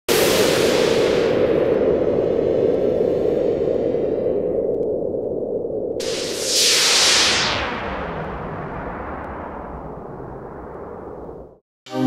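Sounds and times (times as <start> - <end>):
steady low rumble: 0.1 - 11.6
loud rushing burst with hiss: 6.0 - 10.7.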